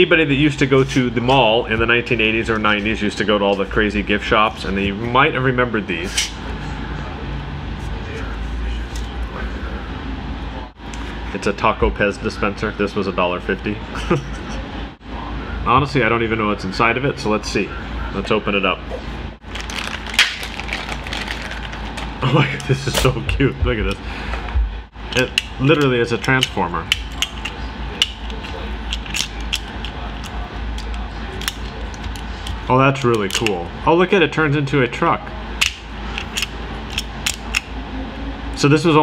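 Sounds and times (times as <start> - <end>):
sharp crack: 20.1 - 20.6.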